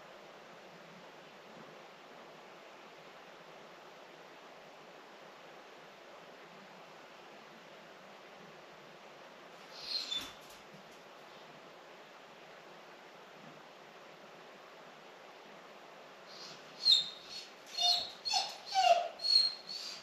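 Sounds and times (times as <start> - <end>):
dog whining: 9.8 - 10.5, 16.4 - 20.0.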